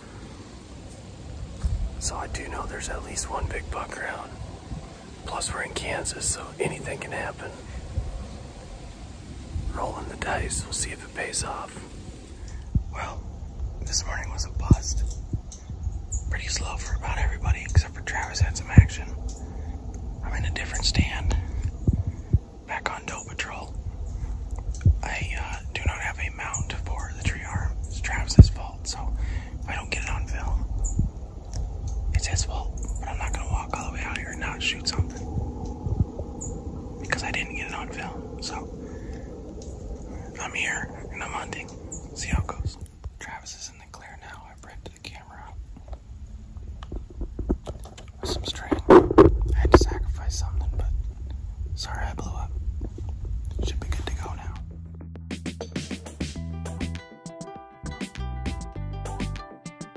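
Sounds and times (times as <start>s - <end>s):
steady low rumble: 0.0s - 57.0s
man whispering: 1.6s - 8.0s, 9.5s - 15.5s, 16.3s - 46.0s, 47.5s - 51.1s, 51.7s - 54.7s.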